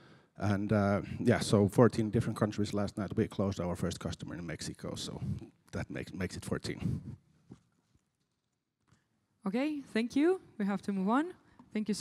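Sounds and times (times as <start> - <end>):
man speaking: 0.4 - 7.2.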